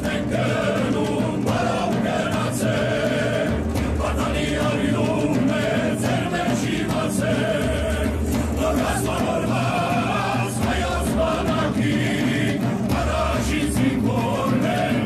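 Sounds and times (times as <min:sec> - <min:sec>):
choir singing: 0:00.0 - 0:15.0.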